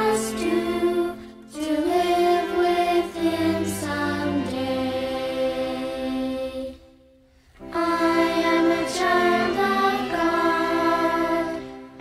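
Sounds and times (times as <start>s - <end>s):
children singing a hymn: 0.0s - 7.0s, 7.6s - 12.0s.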